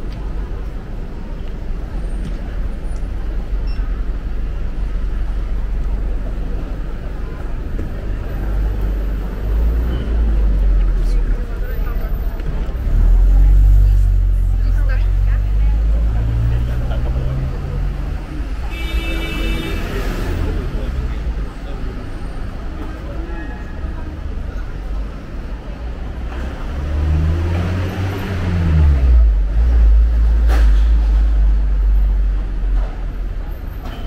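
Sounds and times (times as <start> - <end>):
passers-by talking: 0.0 - 34.0
road traffic rumble: 0.0 - 34.0.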